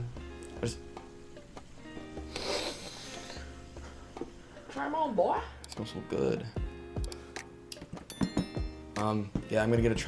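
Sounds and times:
soft guitar music: 0:00.0 - 0:10.0
person sniffing: 0:02.2 - 0:03.6.

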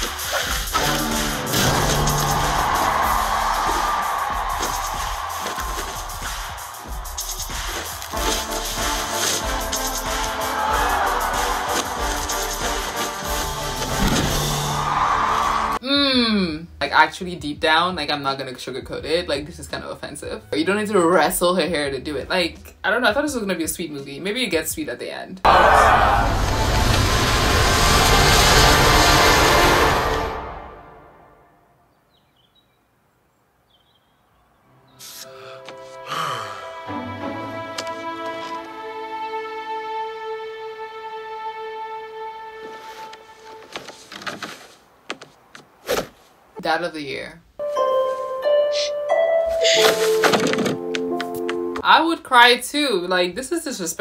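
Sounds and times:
film soundtrack music: 0:00.0 - 0:15.8, 0:25.5 - 0:31.8, 0:34.6 - 0:43.9, 0:47.6 - 0:51.9
loud rushing noise: 0:01.0 - 0:15.8, 0:25.5 - 0:31.2
orchestral film score: 0:25.5 - 0:31.5, 0:35.3 - 0:43.6.

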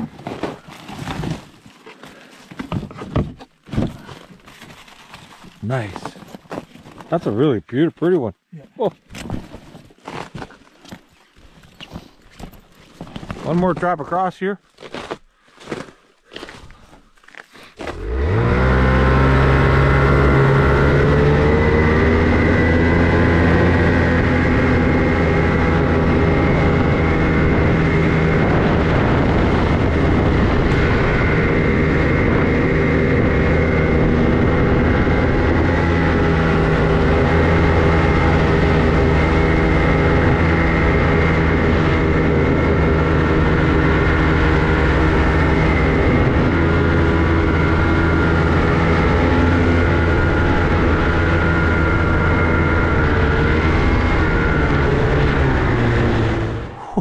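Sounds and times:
snowmobile track noise: 0:00.0 - 0:10.6, 0:11.7 - 0:57.0
snowmobile engine running: 0:17.7 - 0:57.0.

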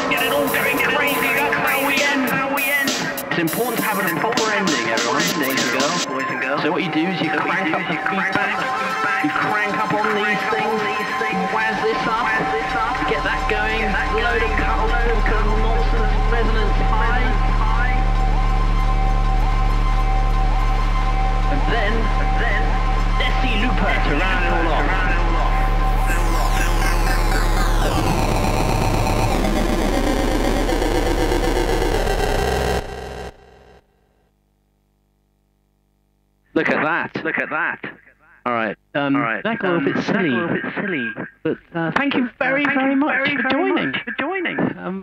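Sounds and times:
loud electronic music: 0:00.0 - 0:06.1, 0:07.0 - 0:33.8
wavering synth melody: 0:11.8 - 0:32.8
steady held synth note: 0:11.8 - 0:33.8
deep bass tone: 0:12.1 - 0:33.8.

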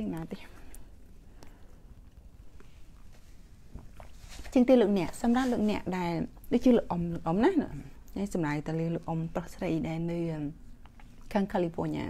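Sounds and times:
woman's voice: 0:00.0 - 0:00.7, 0:04.5 - 0:10.6, 0:11.3 - 0:12.0.

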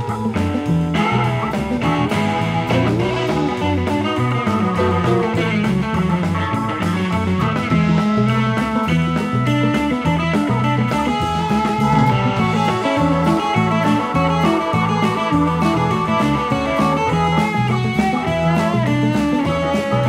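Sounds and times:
rock band playing: 0:00.0 - 0:20.0.

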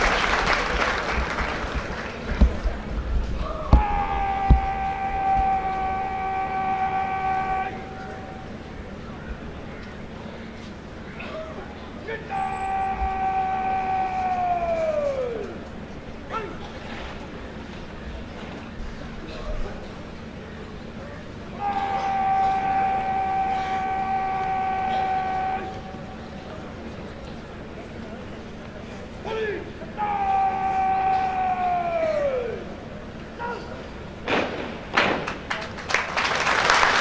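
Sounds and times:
person shouting a command: 0:03.4 - 0:08.4, 0:12.0 - 0:15.5, 0:16.3 - 0:16.7, 0:21.5 - 0:26.0, 0:29.2 - 0:32.7.

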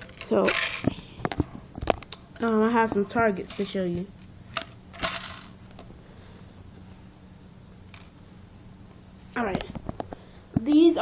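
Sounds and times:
clatter of small hard objects: 0:00.0 - 0:02.0
steady low hum: 0:00.0 - 0:11.0.

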